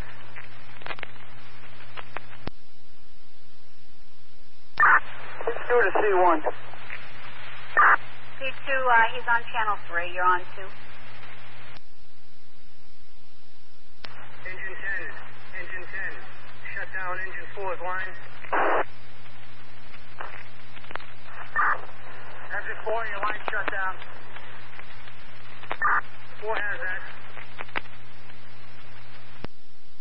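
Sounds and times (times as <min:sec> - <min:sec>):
radio hum and hiss: 0:00.0 - 0:30.0
radio click: 0:00.2 - 0:02.6, 0:17.6 - 0:29.6
garbled radio voices: 0:04.8 - 0:10.8, 0:14.1 - 0:18.9, 0:20.0 - 0:27.9.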